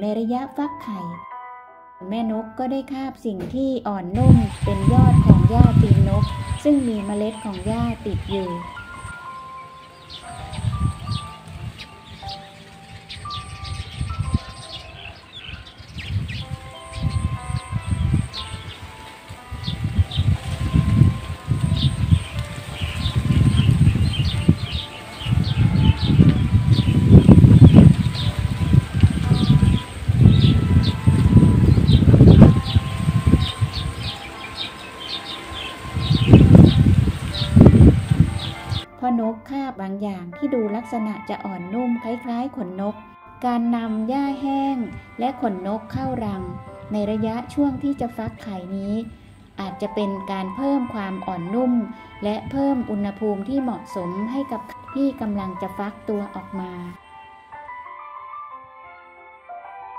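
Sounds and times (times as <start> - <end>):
soft chime-like music: 0.2 - 3.4, 4.1 - 59.9
wind buffeting microphone: 4.1 - 38.9, 44.3 - 49.6
small birds chirping: 4.2 - 38.9.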